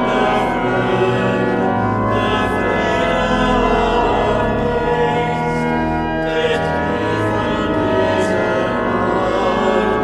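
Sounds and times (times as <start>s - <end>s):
choir singing a hymn: 0.0s - 10.0s
pipe organ chords: 0.0s - 10.0s.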